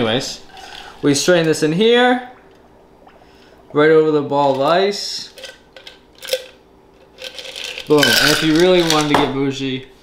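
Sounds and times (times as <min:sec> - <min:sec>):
ice clinking in glass: 0:07.2 - 0:09.2.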